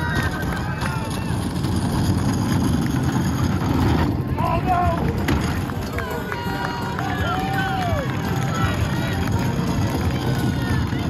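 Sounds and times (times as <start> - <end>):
plastic totes rolling over asphalt: 0.0 - 11.0
spectators shouting and cheering: 0.0 - 11.0.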